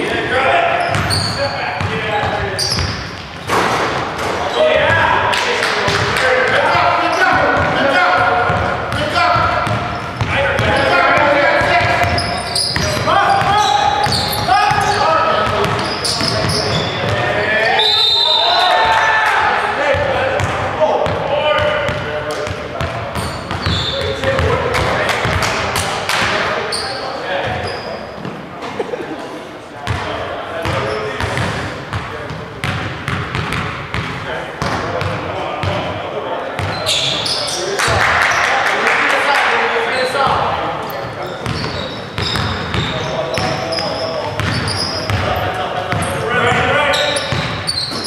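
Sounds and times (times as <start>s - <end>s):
players calling out: 0.0s - 31.4s.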